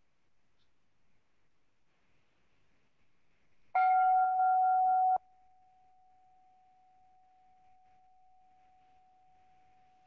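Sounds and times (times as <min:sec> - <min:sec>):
struck bell chime: 0:03.8 - 0:05.2.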